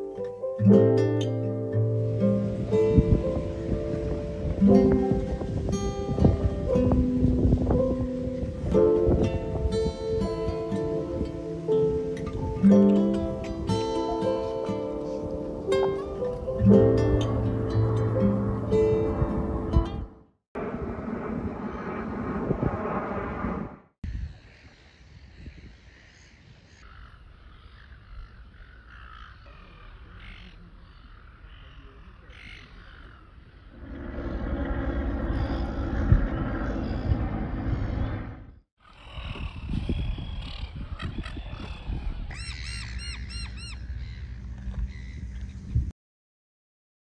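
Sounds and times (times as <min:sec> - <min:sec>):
low wind rumble on microphone: 0:01.8 - 0:14.0, 0:15.0 - 0:29.1, 0:33.1 - 0:45.9
outdoor rumbling noise: 0:17.2 - 0:24.0, 0:33.5 - 0:42.2
bird calling: 0:24.3 - 0:37.1, 0:38.9 - 0:45.6
gulls squawking: 0:24.4 - 0:38.1, 0:42.3 - 0:45.6
low background rumble: 0:33.7 - 0:38.6.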